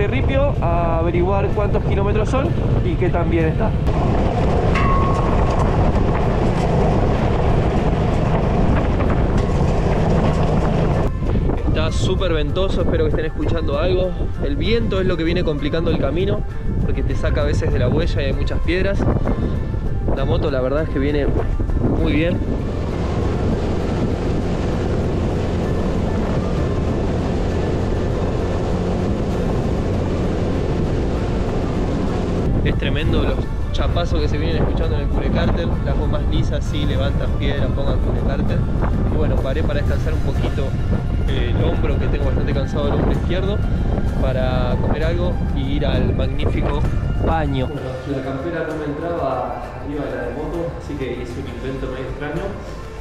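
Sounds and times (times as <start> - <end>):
wind buffeting microphone: 0.0 - 53.0
tyres rumbling on gravel: 3.8 - 11.2
motorcycle engine: 3.9 - 11.2, 22.4 - 32.6.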